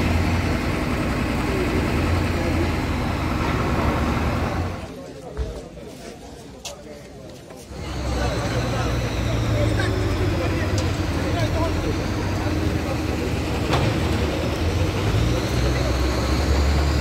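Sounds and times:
diesel machinery engine hum: 0.0 - 5.0, 7.7 - 17.0
people talking: 0.0 - 17.0.

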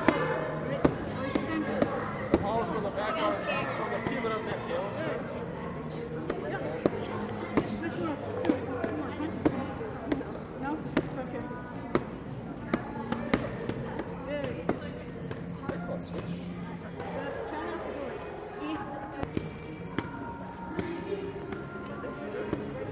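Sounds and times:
voices talking: 0.0 - 22.9.

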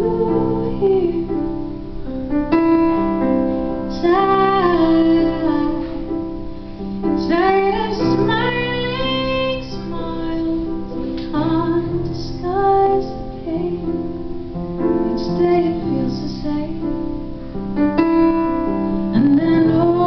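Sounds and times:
woman singing: 0.0 - 1.8, 3.8 - 6.4, 7.0 - 17.4, 18.7 - 20.0
piano chords: 0.0 - 20.0.

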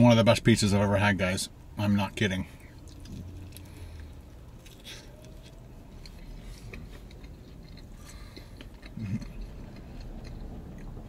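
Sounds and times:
person chewing food: 2.6 - 11.0.

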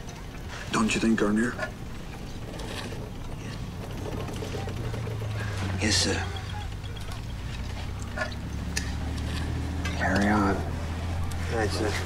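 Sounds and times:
faint clicks and rustles: 0.0 - 12.0
low steady hum: 0.0 - 12.0
people talking: 0.7 - 1.7, 3.4 - 7.4, 10.0 - 12.0.

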